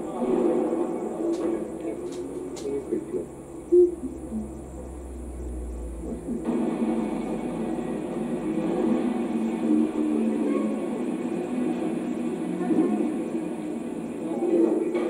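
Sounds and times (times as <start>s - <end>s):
low hum: 0.0s - 15.0s
videotape soundtrack: 0.0s - 15.0s.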